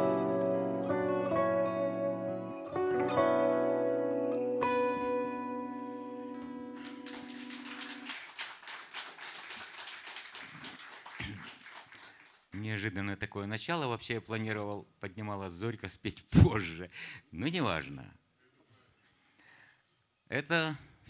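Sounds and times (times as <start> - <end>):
acoustic guitar chords: 0.0 - 8.0
audience applause: 6.3 - 12.6.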